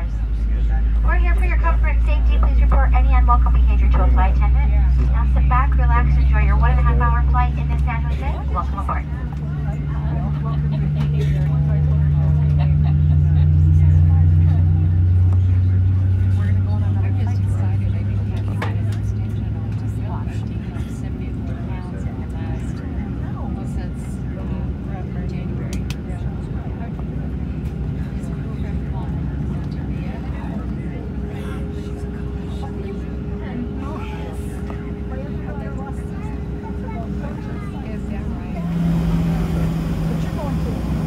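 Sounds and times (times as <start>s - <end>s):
deep hum: 0.0s - 20.5s, 24.0s - 41.0s
airplane cabin engine drone: 0.0s - 41.0s.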